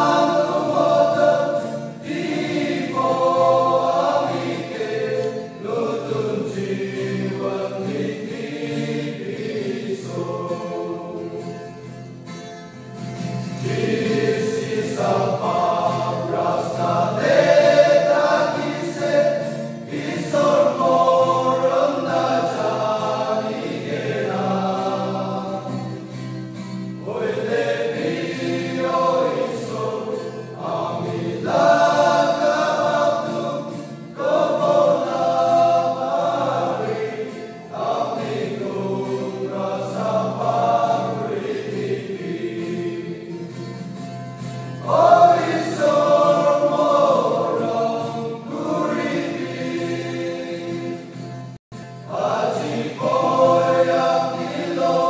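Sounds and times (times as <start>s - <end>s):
men's choir singing gospel: 0.0s - 12.0s, 13.3s - 55.0s.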